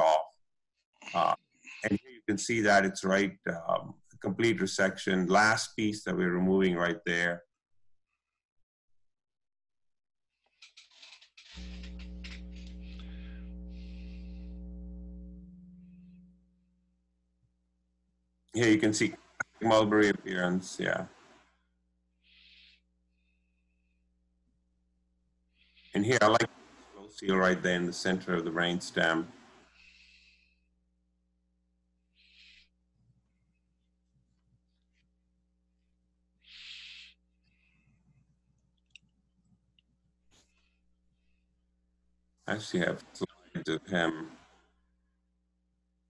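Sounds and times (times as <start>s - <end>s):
electrical crackle: 11.0s - 16.9s
electrical hum: 11.4s - 18.0s.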